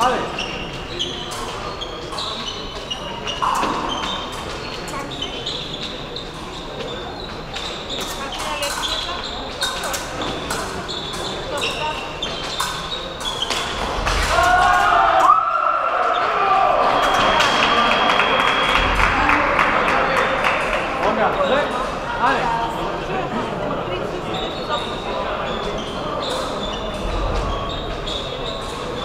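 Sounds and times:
murmur of voices: 0.0 - 29.0.

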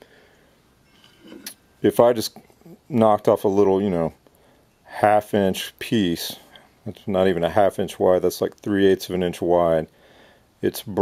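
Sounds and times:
faint handling sounds: 0.7 - 4.9.

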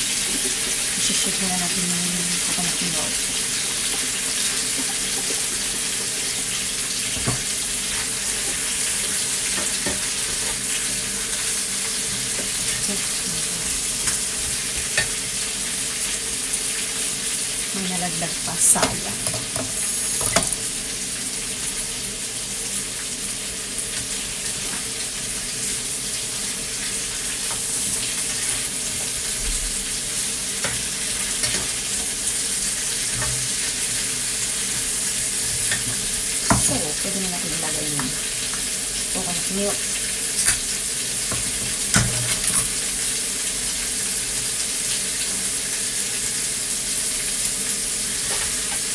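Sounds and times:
squash sizzling in a frying pan: 0.0 - 48.9.

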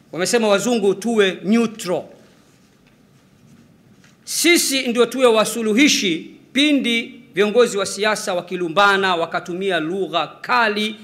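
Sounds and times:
man's amplified voice echoing: 0.0 - 2.4, 4.2 - 11.0.

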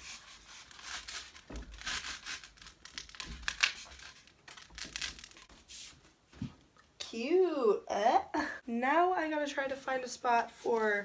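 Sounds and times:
scratchy rubbing and rustling foam: 0.0 - 2.7.

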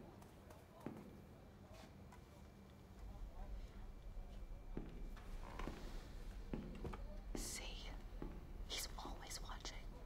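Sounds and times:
low steady hum: 2.6 - 10.0
person whispering: 7.4 - 8.0, 8.7 - 10.0.

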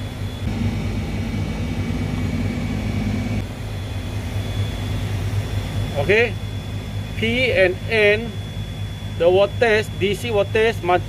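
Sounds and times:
air conditioning units humming: 0.0 - 11.0
faint high whines: 0.0 - 11.0.

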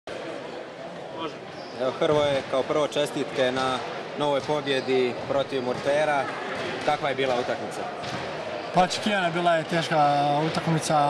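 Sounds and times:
sports hall background noise: 0.1 - 11.0.

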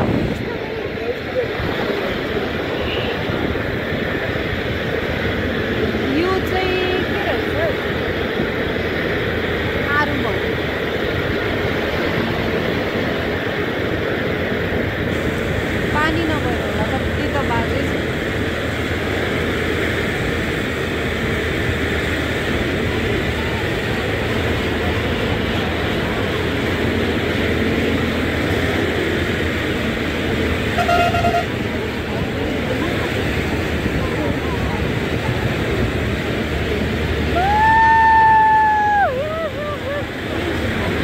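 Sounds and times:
vehicle road noise: 0.0 - 41.0
long horn blast: 30.6 - 31.7
horn toot: 30.7 - 31.6.

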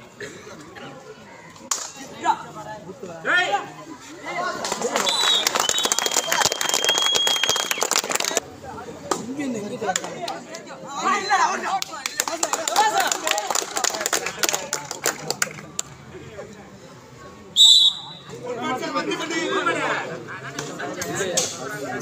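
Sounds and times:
crowd chatter and shouting: 0.0 - 22.0
people clapping: 4.6 - 8.4, 9.8 - 10.7, 11.6 - 16.1
referee's whistle blasts: 17.6 - 18.3.

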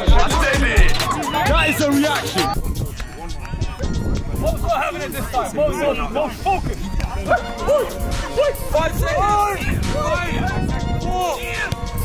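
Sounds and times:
people shouting excited cries: 0.0 - 2.6, 7.2 - 11.7
music with thumping beat: 0.0 - 5.3, 9.6 - 12.0.

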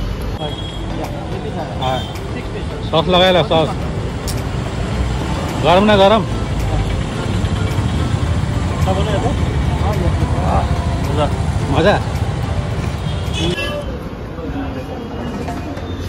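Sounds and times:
street traffic rumble: 0.0 - 16.0
voices nearby: 0.1 - 16.0.

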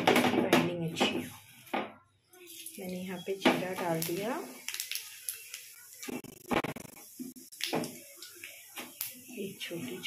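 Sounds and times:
seeds sizzling in hot oil: 0.9 - 10.0.

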